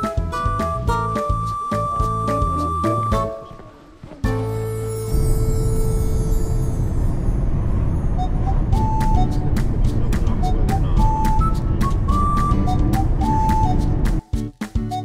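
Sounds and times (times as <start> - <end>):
upbeat background music: 0.0 - 3.5, 8.7 - 15.0
car road and engine rumble: 3.4 - 14.2.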